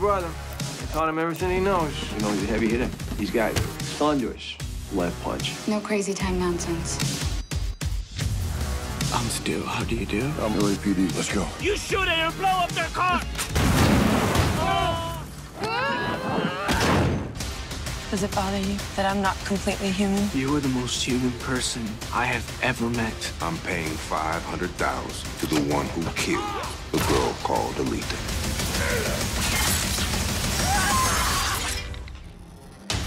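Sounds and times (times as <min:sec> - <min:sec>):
debris crashing: 0:13.4 - 0:15.3
car explosion with low rumble: 0:13.6 - 0:14.6
person crying out: 0:14.6 - 0:17.0, 0:30.6 - 0:31.6
glass shattering: 0:29.4 - 0:32.1.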